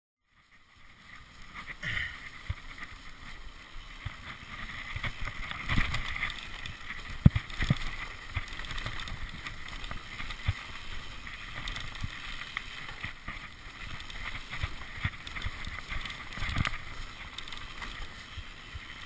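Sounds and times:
bike tyres rumbling on gravel: 0:00.4 - 0:19.0
bike rattling: 0:00.5 - 0:19.0.

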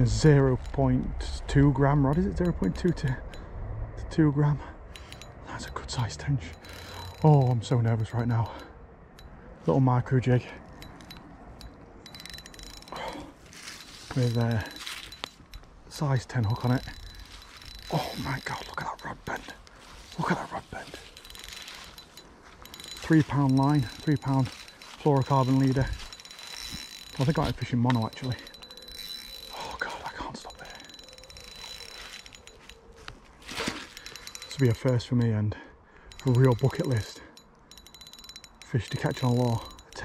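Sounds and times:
fishing reel ticking: 0:00.0 - 0:03.5, 0:04.8 - 0:09.4, 0:10.6 - 0:35.4, 0:36.0 - 0:40.0.

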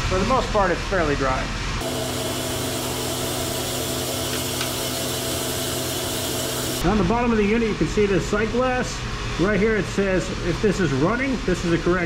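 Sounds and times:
machinery hum with hiss: 0:00.0 - 0:12.0.

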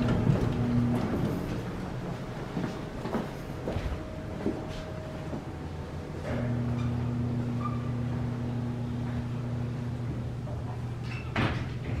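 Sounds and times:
elevator doors sliding shut: 0:00.0 - 0:02.0
door motor hum: 0:00.0 - 0:12.0.

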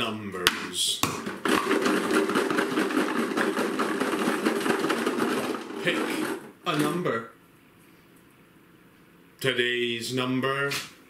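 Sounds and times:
small balls rattling in a jar: 0:01.4 - 0:06.6.

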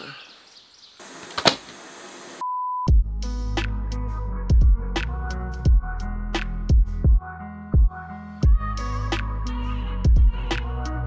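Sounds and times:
background hiss: 0:00.0 - 0:02.4
music: 0:02.4 - 0:11.0.

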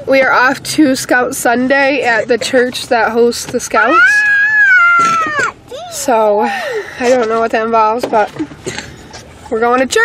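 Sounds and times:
high-pitched voice squeal: 0:03.8 - 0:06.0.

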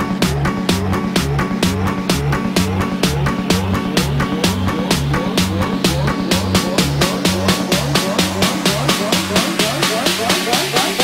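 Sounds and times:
minimal techno dance beat: 0:00.0 - 0:11.0.

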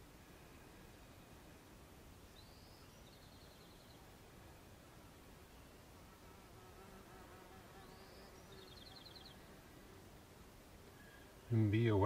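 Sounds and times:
flying insect buzzing: 0:06.1 - 0:10.1.

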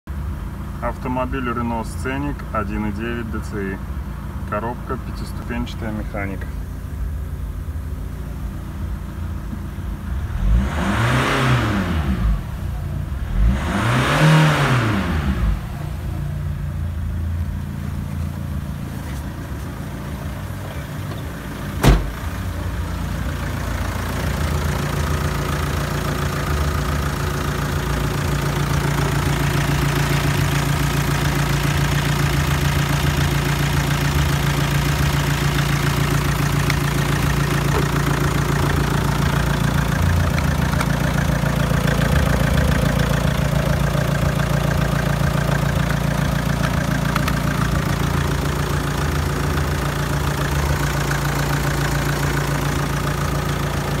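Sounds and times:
diesel engine idling: 0:00.1 - 0:10.6, 0:15.0 - 0:54.0.

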